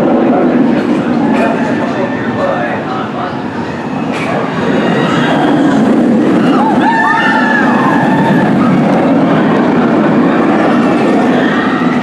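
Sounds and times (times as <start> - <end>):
roller coaster rumbling on track: 0.0 - 12.0.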